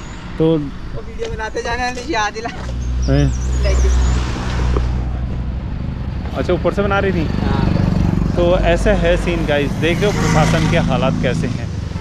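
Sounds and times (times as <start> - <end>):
road noise: 0.0 - 12.0
vehicle driving past: 2.7 - 12.0.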